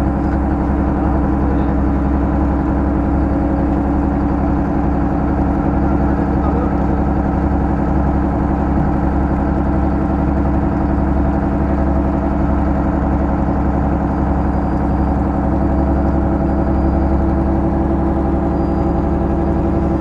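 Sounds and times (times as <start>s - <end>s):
boat engine running steadily: 0.0s - 20.0s.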